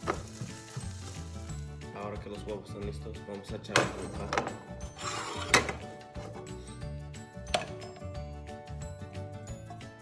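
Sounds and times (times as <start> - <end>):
spatula scraping frying pan: 4.8 - 6.6
background music with beat: 5.6 - 10.0.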